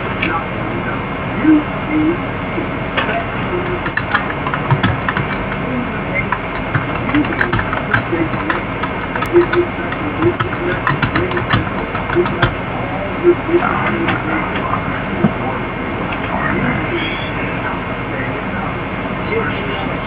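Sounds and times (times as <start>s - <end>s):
scattered clicks: 3.0s - 12.6s.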